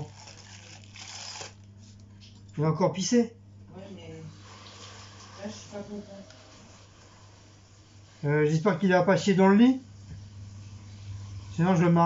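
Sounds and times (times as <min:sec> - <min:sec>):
packaging rustling: 0:00.0 - 0:02.0
low electrical hum: 0:00.0 - 0:12.0.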